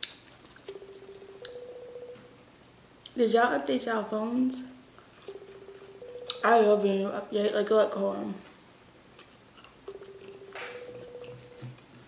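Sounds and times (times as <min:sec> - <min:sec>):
electronic call ringing tone: 0:00.7 - 0:02.3, 0:05.3 - 0:06.8, 0:09.9 - 0:11.7.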